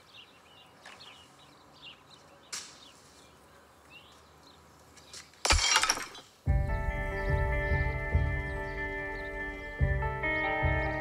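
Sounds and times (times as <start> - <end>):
flowerpot smashing on stone floor: 5.4 - 6.3.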